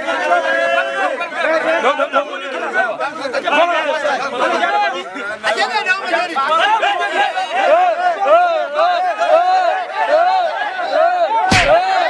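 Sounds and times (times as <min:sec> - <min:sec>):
men chattering: 0:01.2 - 0:08.9.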